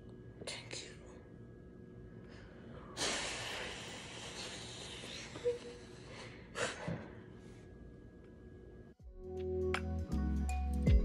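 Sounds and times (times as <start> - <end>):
woman whispering: 0.4 - 1.4.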